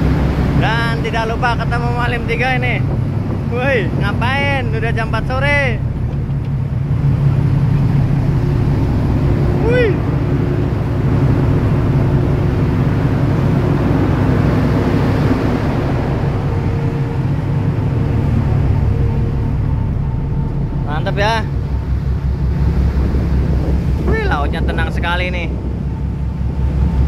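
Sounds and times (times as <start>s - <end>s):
ship engine droning: 0.0s - 27.0s
wake water rushing: 0.0s - 27.0s
person calling out: 9.6s - 10.1s.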